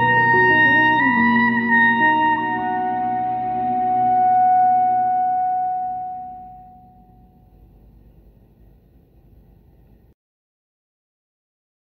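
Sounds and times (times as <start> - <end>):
clarinet long note: 0.0 - 7.4
backing track chord: 0.0 - 7.5
faint low hiss: 0.0 - 10.2.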